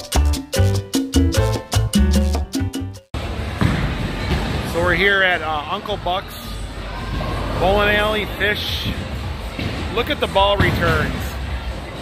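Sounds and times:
steady noisy background: 3.1s - 12.0s.

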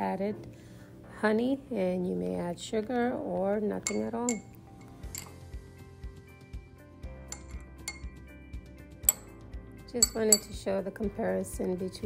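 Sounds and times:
soft background music with beat: 3.0s - 12.0s
spoon clinking against glass cup: 3.8s - 5.4s, 7.3s - 8.2s, 9.0s - 9.4s, 10.0s - 10.6s.

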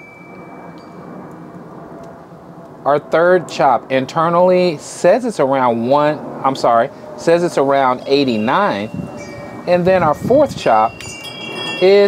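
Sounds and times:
thin high tone: 0.0s - 1.4s, 5.6s - 12.0s.

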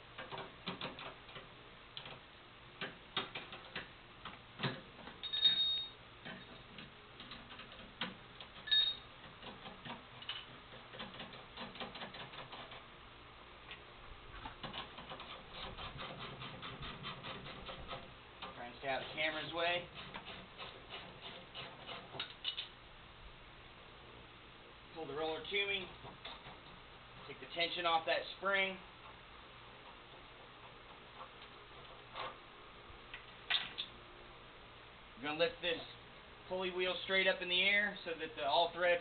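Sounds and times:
short squeaks: 8.6s - 9.1s.

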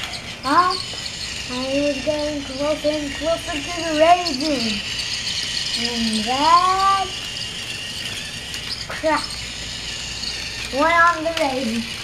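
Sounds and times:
toy motor and gears whirring: 0.0s - 12.0s.

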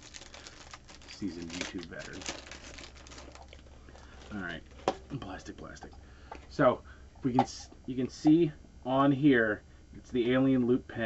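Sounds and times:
plastic bag crinkling: 0.0s - 5.1s.

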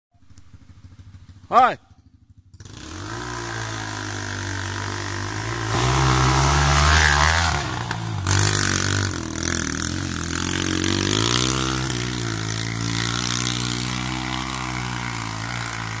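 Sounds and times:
dirt bike engine revving: 0.2s - 16.0s.

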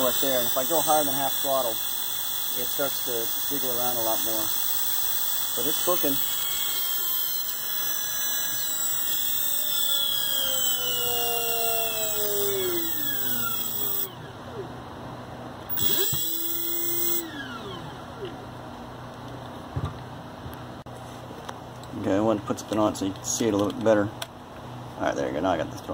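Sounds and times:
electric motor whine: 0.0s - 14.7s, 15.7s - 18.4s.

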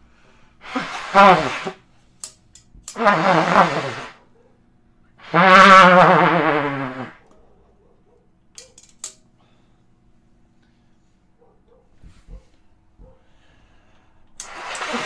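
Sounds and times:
trumpet notes wavering: 0.6s - 1.8s, 2.9s - 4.2s, 5.2s - 7.2s.

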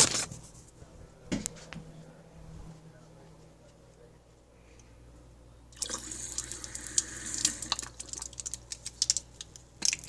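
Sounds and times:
water pouring from a mug: 5.8s - 8.6s.

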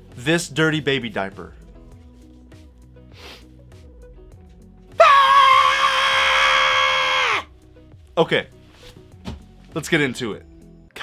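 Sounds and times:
man screaming: 5.0s - 7.5s.

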